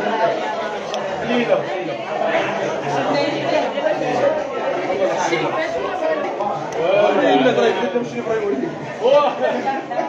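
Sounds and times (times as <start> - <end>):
several voices talking: 0.0 - 10.0.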